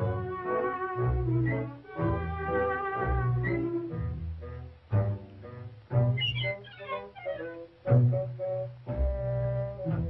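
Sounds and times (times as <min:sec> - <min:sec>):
orchestral cartoon music: 0:00.0 - 0:10.0.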